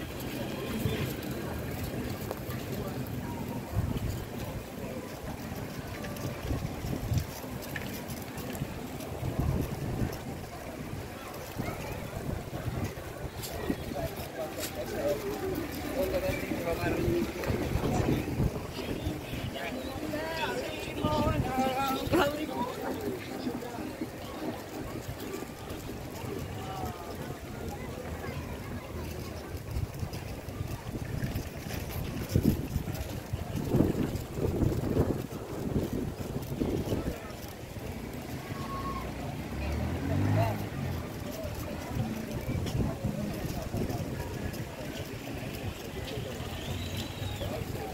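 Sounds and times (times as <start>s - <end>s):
wind buffeting microphone: 0.0s - 39.6s, 40.2s - 47.9s
faint voices of passers-by: 0.0s - 47.9s.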